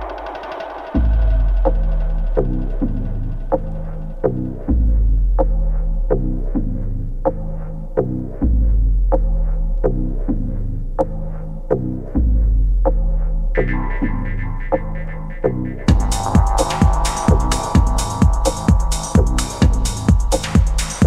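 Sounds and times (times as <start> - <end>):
deep bass notes: 0.0 - 21.0
sharp percussive hits: 13.9 - 21.0.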